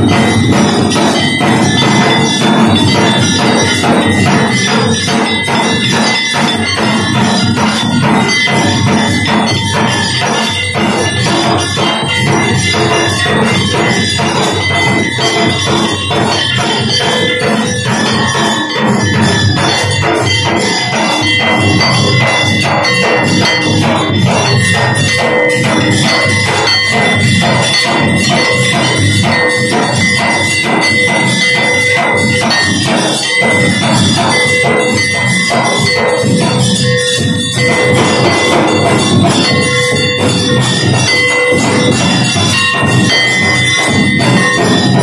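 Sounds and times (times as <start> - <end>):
brass bell ringing: 0.0 - 45.0
percussion: 0.0 - 45.0.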